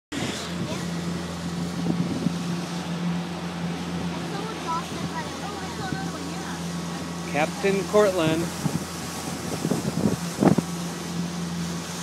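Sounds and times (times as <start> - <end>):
outboard motor running: 0.1 - 12.0
water noise: 0.1 - 12.0
wind noise: 8.5 - 10.8.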